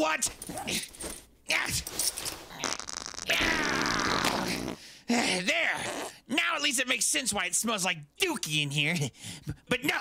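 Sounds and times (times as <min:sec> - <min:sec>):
cartoon fart: 0:02.6 - 0:04.8.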